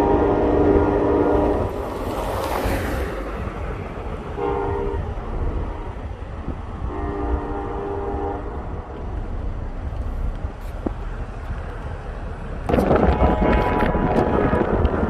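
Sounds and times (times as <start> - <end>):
locomotive air horn blasts: 0.0 - 1.8, 4.4 - 6.0, 6.8 - 8.9, 12.7 - 15.0
steady low rumble: 3.0 - 15.0.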